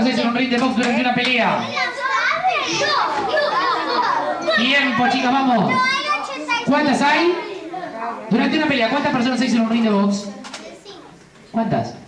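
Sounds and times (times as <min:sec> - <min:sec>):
children talking and calling out: 0:00.0 - 0:11.6.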